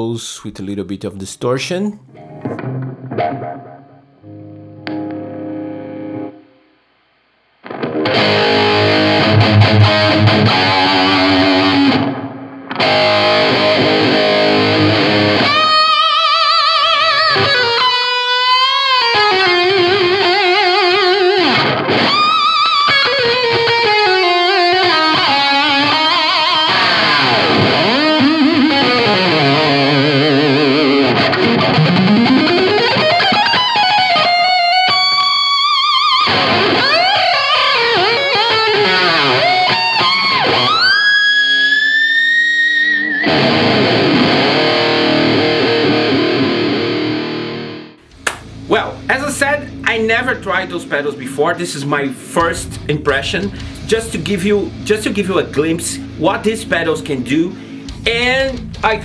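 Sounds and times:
distorted electric guitar solo: 2.1 - 6.7, 7.6 - 59.0.

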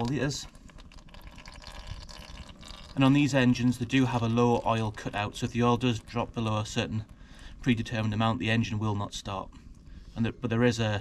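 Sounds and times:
oil trickling into drain pan: 0.0 - 7.3.

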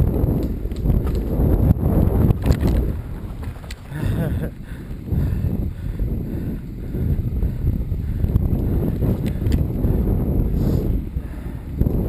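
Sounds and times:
sharp clicks from bike: 0.0 - 4.0, 8.2 - 9.9
bike tyre rumble: 0.0 - 12.0
wind buffeting microphone: 0.0 - 12.0.

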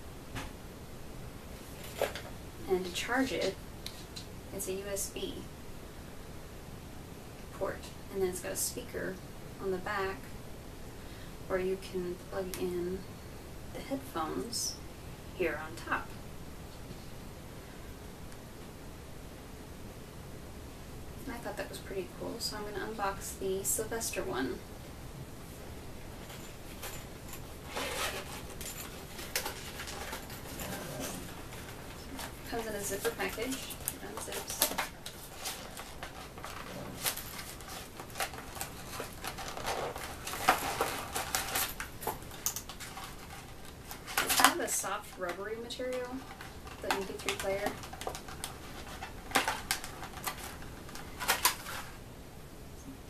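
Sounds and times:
plastic package crinkling: 31.3 - 44.5.

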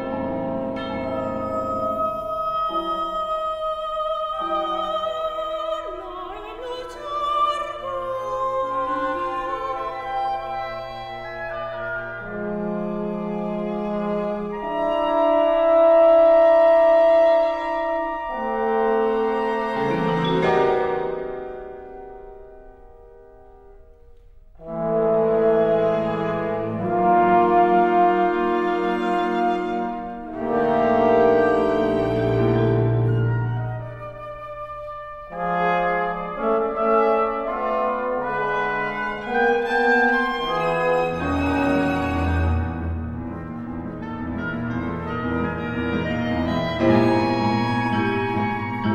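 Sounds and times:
classical chamber music: 0.0 - 48.9.

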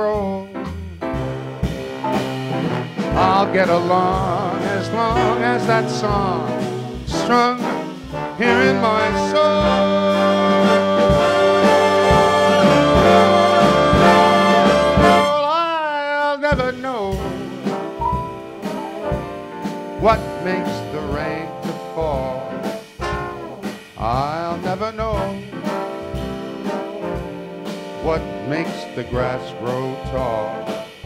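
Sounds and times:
big band jazz brass chord: 0.0 - 15.6, 16.5 - 31.0
sharp drum accents: 0.2 - 15.6, 16.4 - 31.0.

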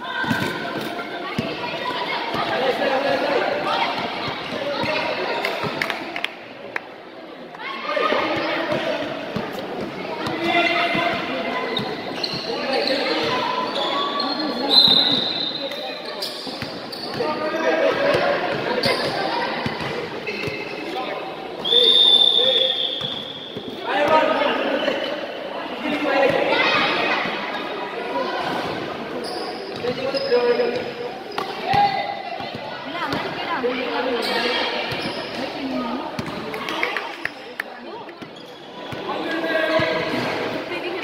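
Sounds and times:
players' voices: 0.0 - 41.0.

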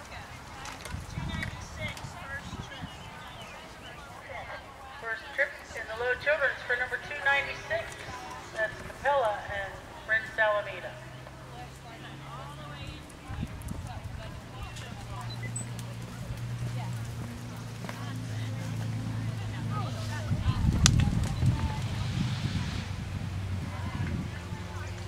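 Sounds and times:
people's voices: 0.0 - 25.0
horse hoofbeats on sand: 12.8 - 22.3.

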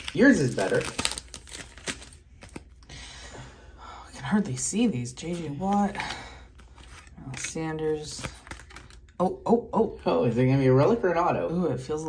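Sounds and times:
foil wrapper crinkling: 0.0 - 2.8, 5.4 - 9.1.

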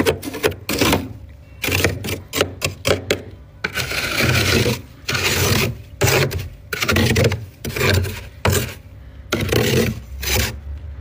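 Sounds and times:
fingers scraping frost: 3.6 - 10.6.

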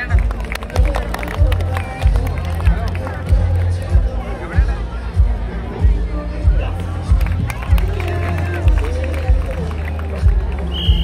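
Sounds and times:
crowd voices: 0.0 - 11.0
high whistle blast: 10.7 - 11.0.

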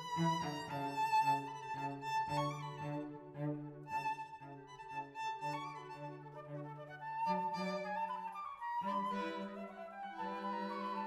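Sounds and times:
cello low line: 0.0 - 11.0
flute: 0.0 - 11.0
upper string instrument: 0.0 - 11.0.

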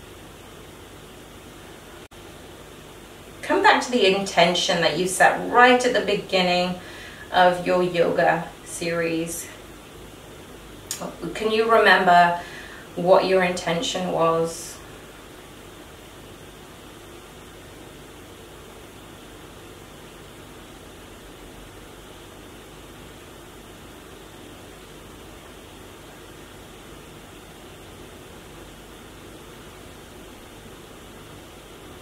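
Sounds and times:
room tone hiss: 0.0 - 32.0.

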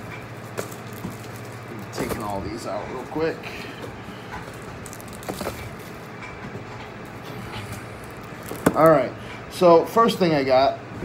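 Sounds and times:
steady background hum: 0.0 - 11.0
rustling in cardboard box: 0.6 - 2.7, 4.4 - 6.1, 7.5 - 9.1.

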